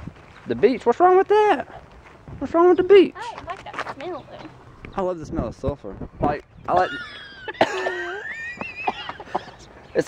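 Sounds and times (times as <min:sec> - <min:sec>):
person stifling a laugh: 0:06.8 - 0:09.6.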